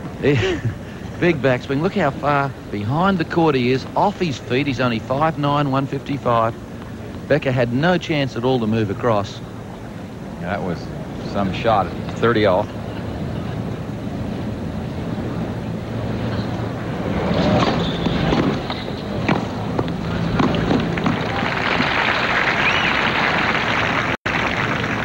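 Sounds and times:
crowd murmur: 0:03.8 - 0:25.0
crowd applauding: 0:19.9 - 0:25.0.

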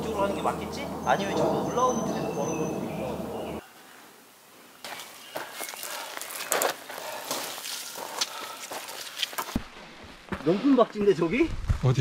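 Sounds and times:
footsteps crunching on leafy dirt: 0:04.8 - 0:11.9.

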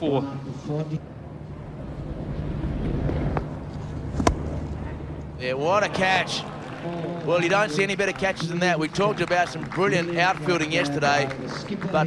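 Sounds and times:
low hum: 0:00.0 - 0:11.5
open-air background noise: 0:00.0 - 0:12.0.

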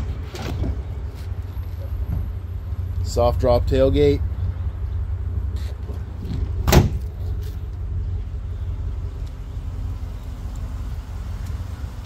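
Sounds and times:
steady low rumble: 0:00.0 - 0:12.0
tailgate slamming shut: 0:06.3 - 0:07.1.

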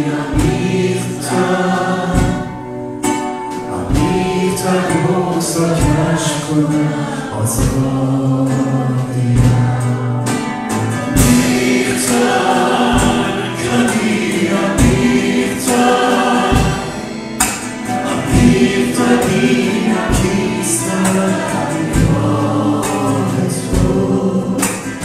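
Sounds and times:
acoustic guitar: 0:00.0 - 0:25.0
voices singing together: 0:00.0 - 0:25.0
low drum beat: 0:03.8 - 0:05.2, 0:11.2 - 0:24.5.

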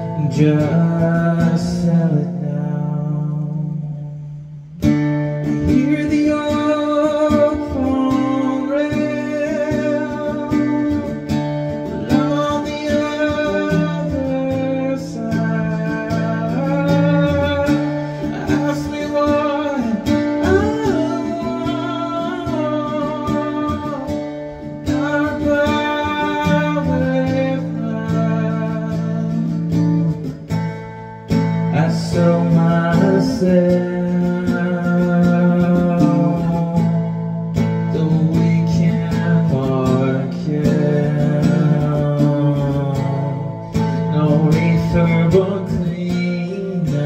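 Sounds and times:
strummed acoustic guitar: 0:00.0 - 0:47.0
person singing: 0:05.5 - 0:30.5, 0:31.5 - 0:47.0.

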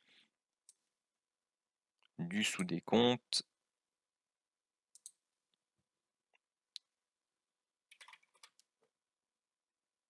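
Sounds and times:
computer mouse clicks: 0:04.9 - 0:05.2, 0:07.9 - 0:08.7.

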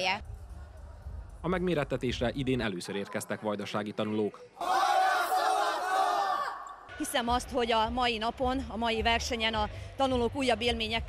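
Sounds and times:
teenagers shouting team cheer: 0:04.6 - 0:06.7.

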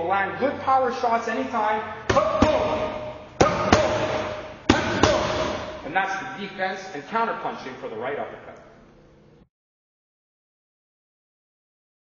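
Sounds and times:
boxing gloves hitting mitts: 0:02.1 - 0:05.8.

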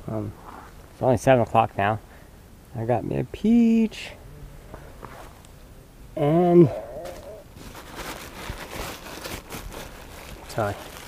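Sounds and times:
food wrapper rustling: 0:07.0 - 0:11.0.

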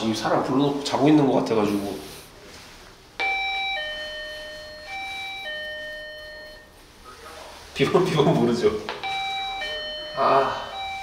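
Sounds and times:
electronic door chime ding-dong: 0:03.2 - 0:06.8, 0:09.0 - 0:11.0.

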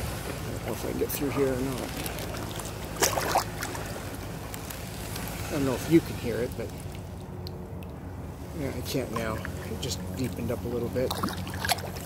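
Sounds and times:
kayak paddle splash: 0:00.0 - 0:07.1, 0:11.0 - 0:12.0.

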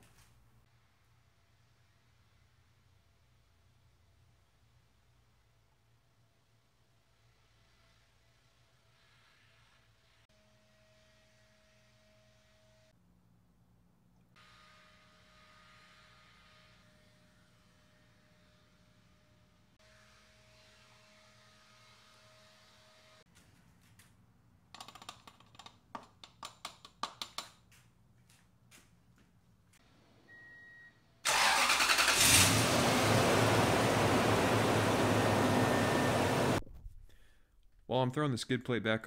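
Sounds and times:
truck engine starting and running: 0:31.2 - 0:36.8.

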